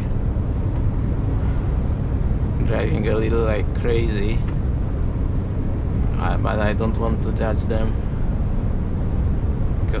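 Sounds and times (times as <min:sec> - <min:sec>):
truck engine drone: 0:00.0 - 0:10.0
tyre and road noise: 0:00.0 - 0:10.0.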